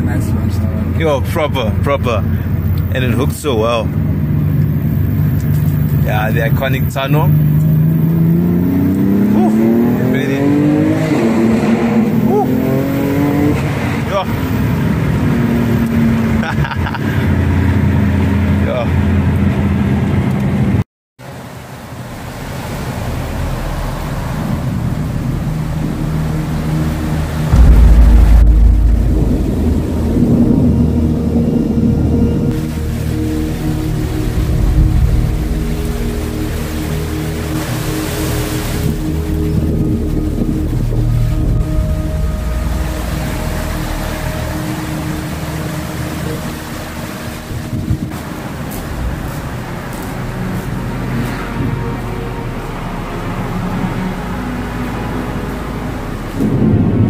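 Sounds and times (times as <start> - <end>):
loud deep rumble: 0.0 - 12.4, 23.1 - 54.6
car engine accelerating: 0.0 - 20.8, 23.0 - 56.7
rain hissing: 21.3 - 51.1
steady musical tones: 24.8 - 56.8.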